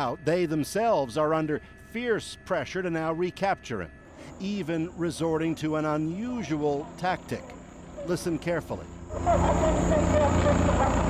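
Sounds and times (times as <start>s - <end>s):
helicopter rotor drone: 0.0s - 11.0s
woman speaking over loudspeaker: 9.1s - 11.0s.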